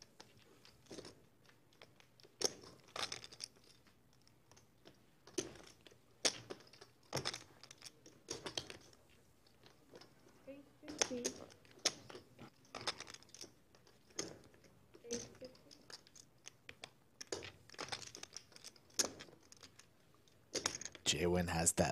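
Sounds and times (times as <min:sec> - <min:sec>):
poker chips clicking together: 0:00.2 - 0:10.1, 0:10.9 - 0:21.0.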